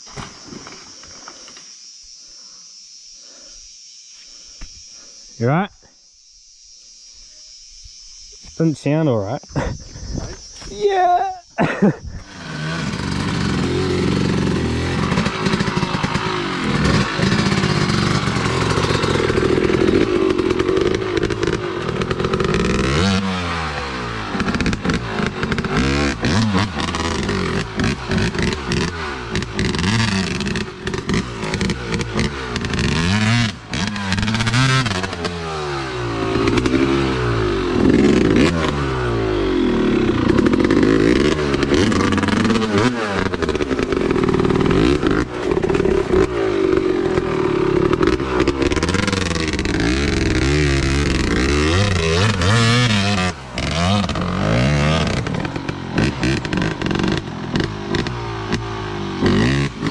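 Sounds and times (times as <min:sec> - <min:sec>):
dirt bike engine revving: 0:08.3 - 0:59.9.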